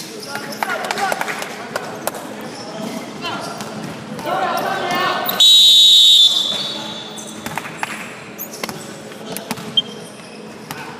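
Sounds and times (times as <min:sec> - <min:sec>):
players' voices: 0:00.0 - 0:10.9
referee's whistle blast: 0:05.3 - 0:07.2.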